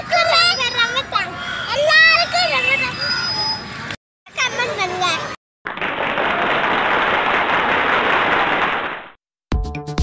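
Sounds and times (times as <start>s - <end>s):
crowd applauding: 5.7s - 9.2s.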